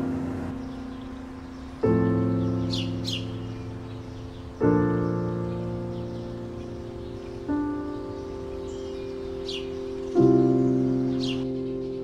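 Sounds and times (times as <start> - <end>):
soft piano music: 0.0 - 12.0.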